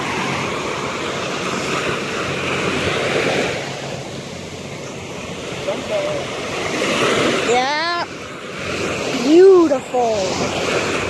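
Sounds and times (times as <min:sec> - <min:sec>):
small surf breaking on sand: 0:00.0 - 0:11.0.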